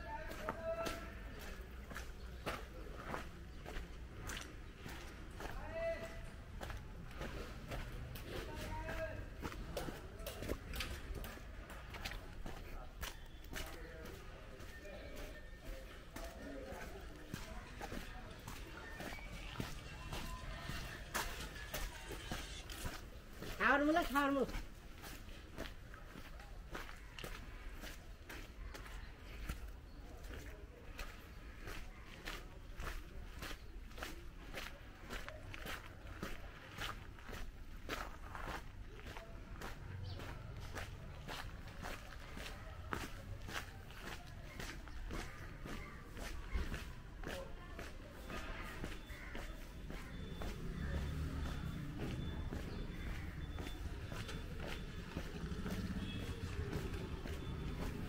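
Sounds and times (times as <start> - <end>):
footsteps on gravel lane: 0.0 - 58.0.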